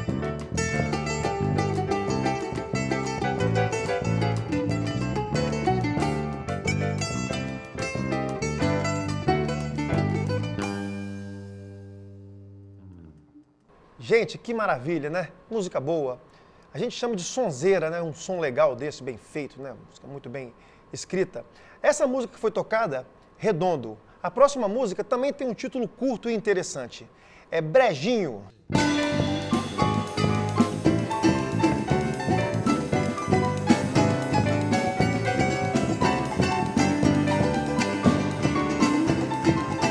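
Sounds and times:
drum kit: 0.0 - 11.8, 28.7 - 39.9
electric keyboard: 0.0 - 11.9, 28.7 - 39.9
band chord ringing out: 0.0 - 13.4, 28.7 - 39.9
plucked string instrument: 0.0 - 13.5, 28.7 - 39.9
electric bass: 0.0 - 13.7, 28.7 - 39.9
downward slide in low notes: 12.1 - 13.6.

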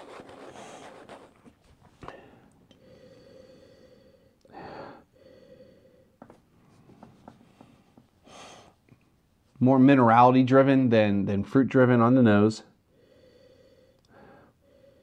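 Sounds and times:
man sniffing through nose: 0.0 - 1.4, 8.2 - 8.8.

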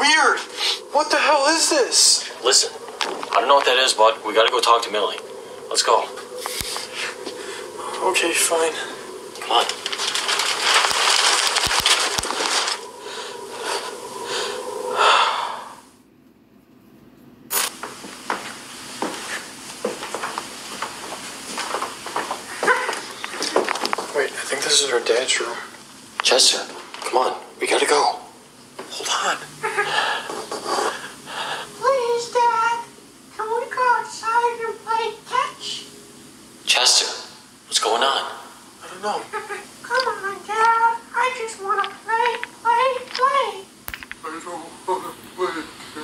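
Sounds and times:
faint hiss: 0.0 - 16.0, 17.5 - 46.0
footsteps on hardwood floor: 17.8 - 24.3
child-like voice calling sing-song: 39.9 - 43.7.

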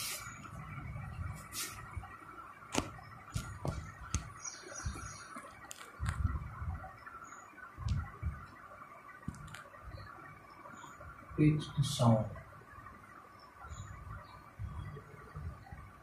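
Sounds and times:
low thumps: 7.8 - 8.5.

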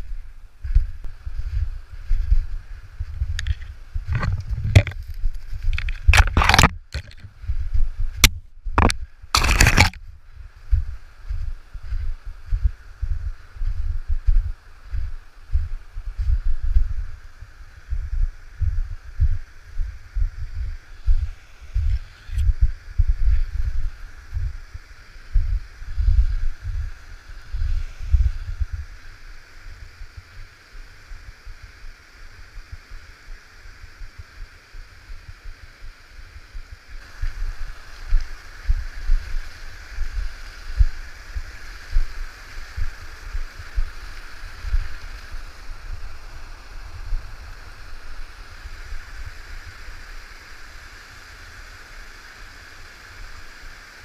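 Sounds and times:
low bumps: 0.0 - 17.0
kayak hull scraping over snow: 3.4 - 7.3
rushing water: 12.3 - 54.0.

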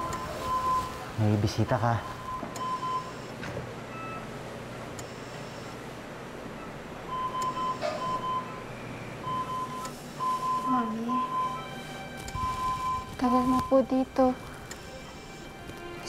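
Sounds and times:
soft background music: 0.0 - 3.3, 6.5 - 16.0
rapid high alarm beeps: 2.0 - 3.4, 5.0 - 5.8, 7.1 - 11.8, 12.4 - 14.1, 14.7 - 15.6.

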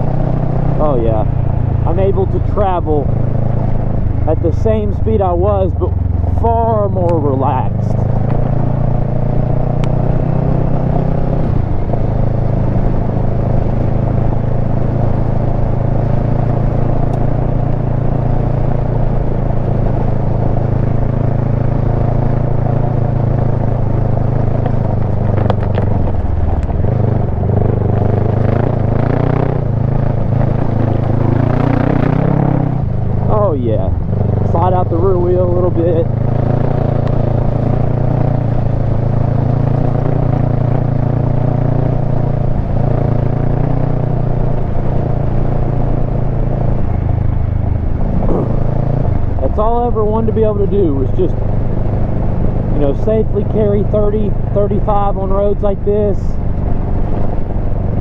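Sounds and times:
motorcycle engine cruising: 0.0 - 58.0.

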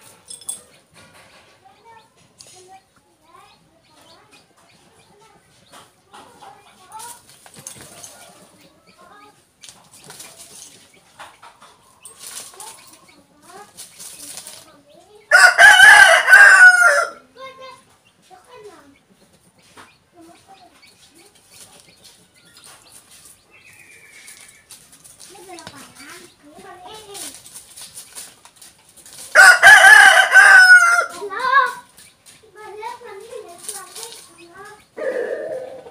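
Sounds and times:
rooster crowing: 15.3 - 17.2, 29.4 - 31.2.

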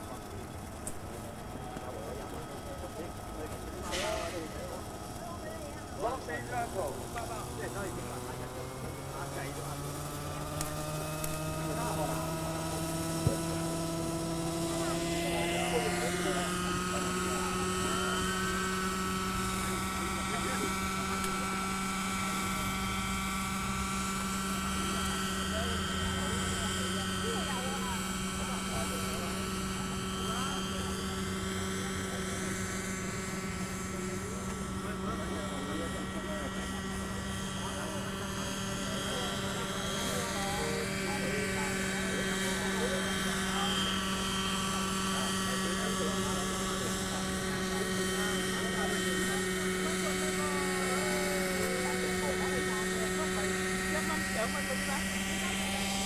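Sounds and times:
model helicopter engine drone: 0.0 - 56.0.

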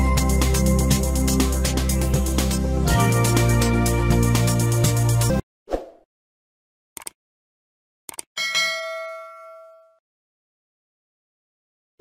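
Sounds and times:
bell-like ding: 8.4 - 10.0.

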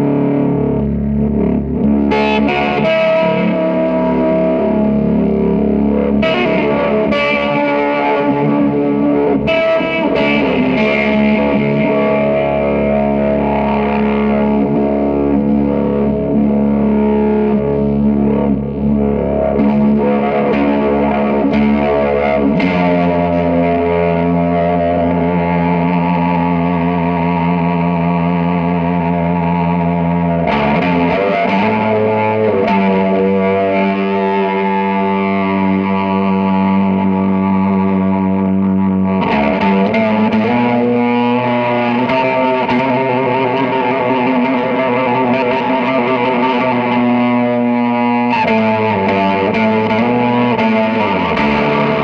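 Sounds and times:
droning effects-processed guitar: 0.0 - 52.0.

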